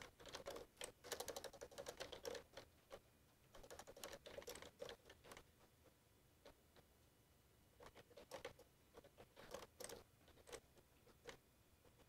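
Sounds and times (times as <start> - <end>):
computer keyboard typing: 0.0 - 5.5, 7.8 - 12.0.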